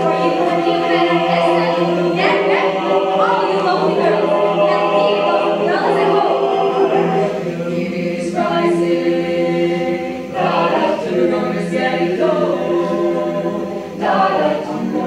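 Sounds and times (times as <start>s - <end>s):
choir singing a cappella: 0.0s - 15.0s.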